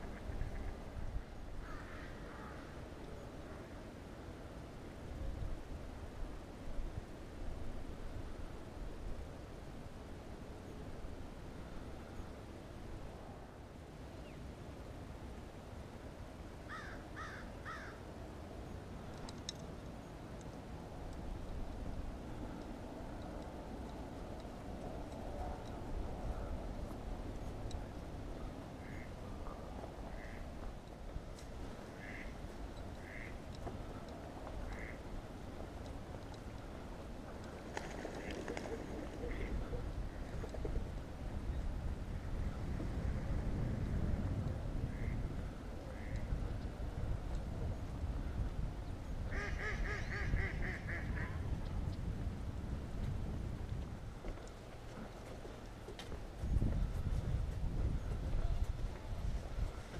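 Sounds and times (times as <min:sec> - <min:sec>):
waterside birds calling: 0:31.8 - 0:35.5.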